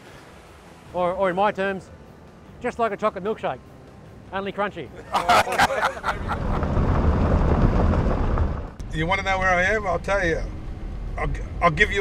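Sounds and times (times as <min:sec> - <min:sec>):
car wind and road noise: 0:00.0 - 0:12.0.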